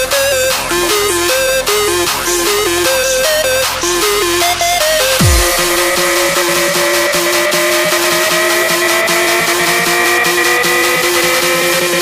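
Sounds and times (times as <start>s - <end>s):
electronic dance music: 0.5s - 12.0s.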